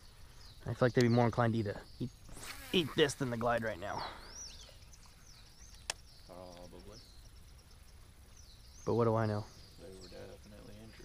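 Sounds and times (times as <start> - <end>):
birds whistling: 0.0 - 11.0
sharp click: 5.7 - 6.7.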